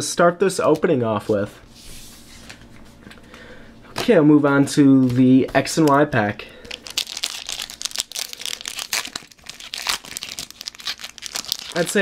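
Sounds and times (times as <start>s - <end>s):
foil wrapper crinkling and tearing: 6.6s - 12.0s.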